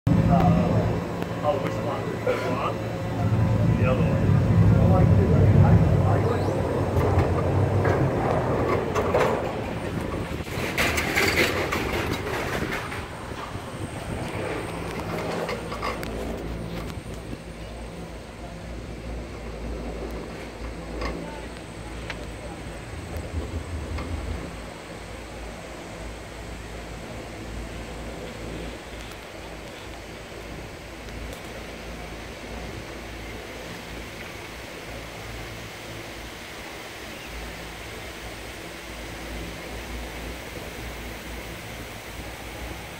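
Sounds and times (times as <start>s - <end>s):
wind: 0.0s - 42.9s
cable run rumble: 0.1s - 42.9s
lift machinery humming: 0.1s - 42.9s.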